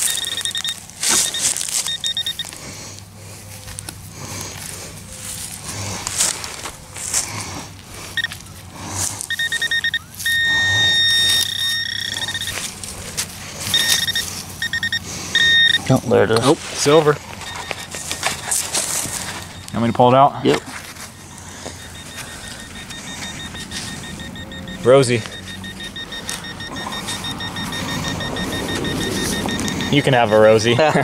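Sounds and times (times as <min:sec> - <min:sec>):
metal detector beeping: 0:00.0 - 0:02.7, 0:08.0 - 0:31.0
hand digger scraping soil: 0:03.7 - 0:31.0.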